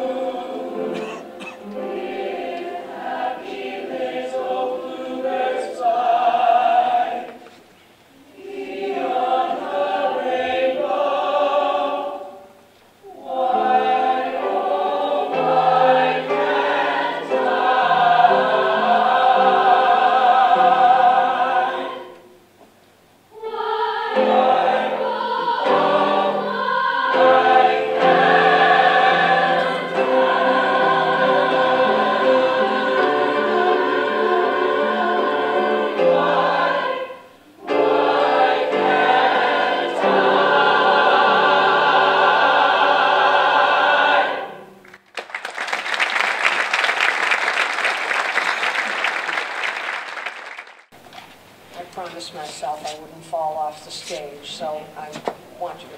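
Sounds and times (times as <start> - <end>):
mixed choir singing: 0.0 - 22.5, 23.3 - 45.0
audience applause: 44.8 - 50.9.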